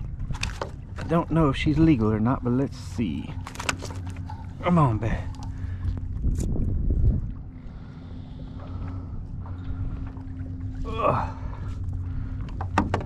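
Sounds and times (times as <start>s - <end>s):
wind buffeting microphone: 0.0s - 3.4s, 4.2s - 13.0s
steady low hum: 0.0s - 13.0s
waves lapping against kayak hull: 0.0s - 13.0s.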